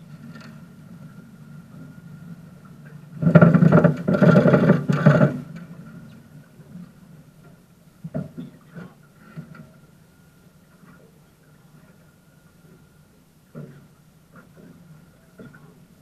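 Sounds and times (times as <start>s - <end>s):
outboard motor idling: 0.0s - 16.0s.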